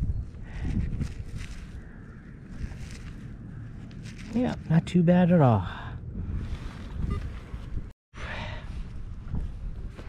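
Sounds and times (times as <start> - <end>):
wind rumble on microphone: 0.0 - 4.7, 5.8 - 10.0.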